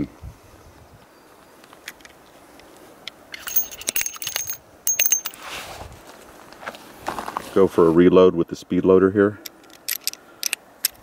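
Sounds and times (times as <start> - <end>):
brass cases clinking: 3.4 - 5.4.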